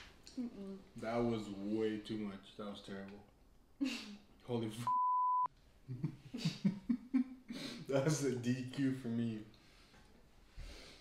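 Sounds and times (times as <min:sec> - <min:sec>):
censor bleep: 0:04.9 - 0:05.5.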